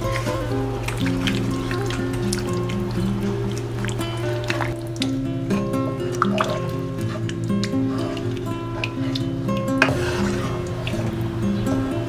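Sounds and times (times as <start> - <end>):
background music: 0.0 - 12.0
liquid stirred in saucepan: 0.0 - 12.0.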